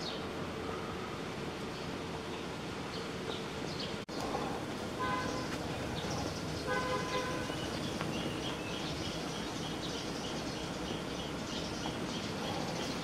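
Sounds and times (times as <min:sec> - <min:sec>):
outdoor background noise: 0:00.0 - 0:13.0
vehicle horn honking: 0:05.0 - 0:05.6, 0:06.6 - 0:07.6.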